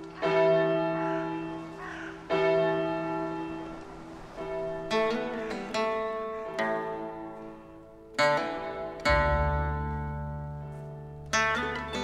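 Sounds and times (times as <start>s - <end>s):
large church bell ringing: 0.0s - 12.0s.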